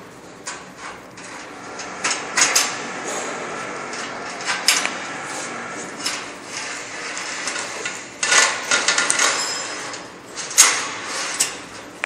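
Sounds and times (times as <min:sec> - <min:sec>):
chain clinking and scraping on metal: 0:05.9 - 0:11.6.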